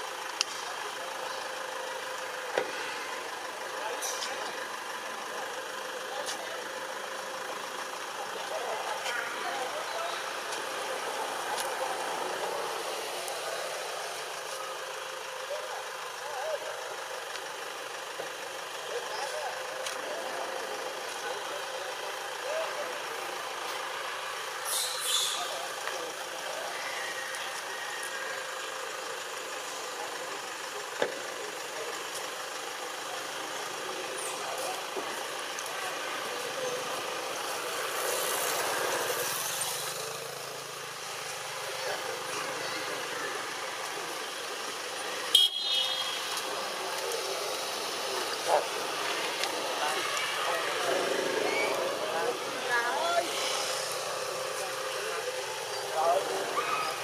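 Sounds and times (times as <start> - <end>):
faint voices: 0.0 - 45.3, 46.0 - 57.0
distant vehicles: 0.0 - 57.0.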